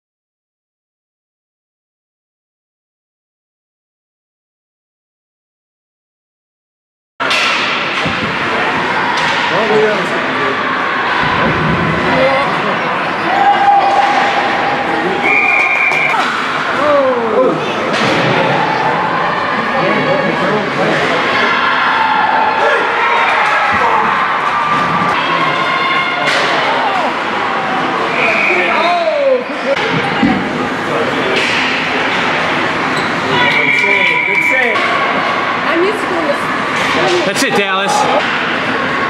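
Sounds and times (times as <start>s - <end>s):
pucks and sticks knocking boards: 7.2s - 9.7s, 31.3s - 32.4s
spectators talking and calling out: 7.3s - 39.0s.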